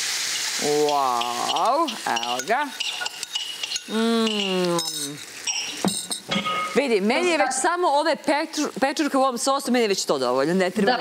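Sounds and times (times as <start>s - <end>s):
metal spoon scraping ceramic bowl: 1.3s - 6.8s
person drawn-out vocal sound: 3.9s - 5.2s.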